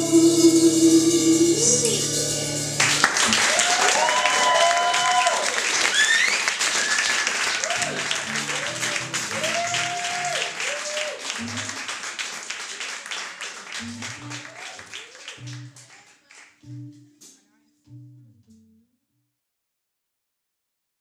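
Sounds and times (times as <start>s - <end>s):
audience applauding and cheering: 2.7s - 16.9s
low instrument notes: 7.7s - 10.5s, 13.8s - 14.6s, 15.4s - 15.8s, 17.9s - 18.8s.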